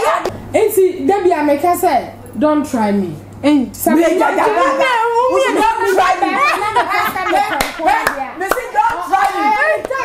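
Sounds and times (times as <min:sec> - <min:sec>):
women talking excitedly: 0:03.8 - 0:10.0
hand claps: 0:07.5 - 0:10.0.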